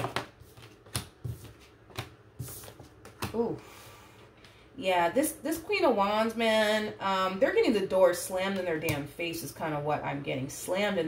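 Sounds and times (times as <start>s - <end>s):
cards being shuffled: 0.0s - 3.4s.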